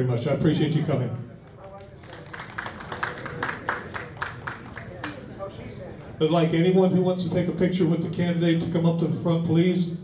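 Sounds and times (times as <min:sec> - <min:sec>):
scattered applause: 0:01.4 - 0:05.5.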